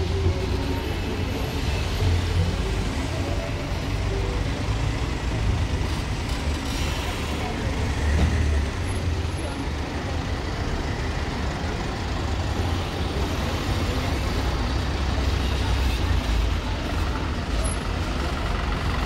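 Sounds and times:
minibuses idling and pulling away: 0.0 - 19.0
street traffic noise: 0.0 - 19.0.

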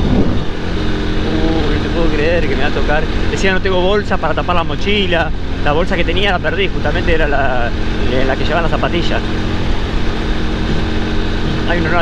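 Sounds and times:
wind on microphone: 0.0 - 1.4
motorcycle engine running: 0.0 - 12.0.

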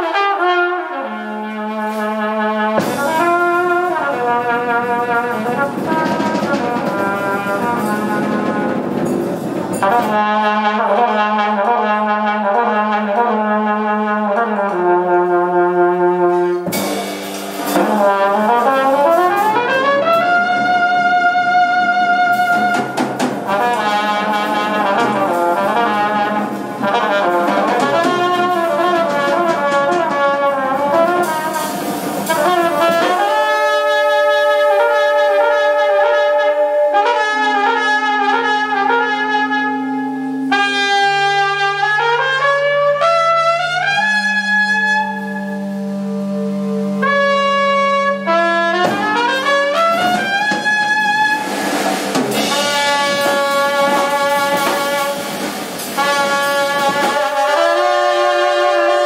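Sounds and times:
saxophone: 0.0 - 16.9, 17.6 - 59.0
bass: 0.0 - 59.0
drums: 0.0 - 59.0
trumpet: 0.0 - 59.0.

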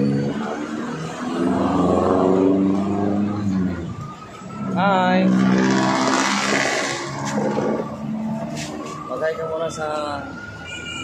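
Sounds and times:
diesel bus engine roaring: 0.0 - 9.2.

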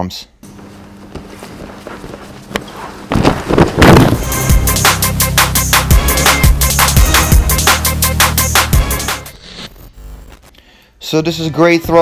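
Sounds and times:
canvas jackets rustling: 0.5 - 4.5
feet scuffing and stamping on a mat: 0.6 - 4.3.

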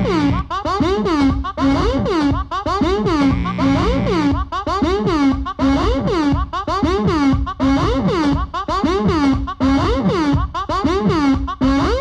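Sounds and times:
synthesizer sequence with pitch glides: 0.0 - 12.0.

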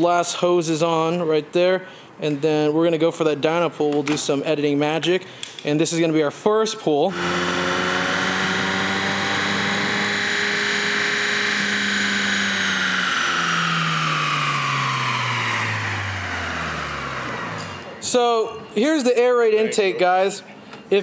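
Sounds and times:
car engine revving high: 7.1 - 18.1
high whine: 7.1 - 18.9.

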